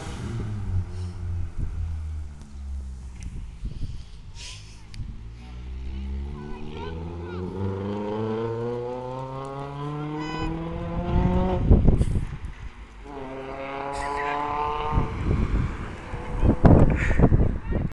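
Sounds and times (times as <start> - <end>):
car engine accelerating hard: 0.0 - 3.8, 5.1 - 17.3.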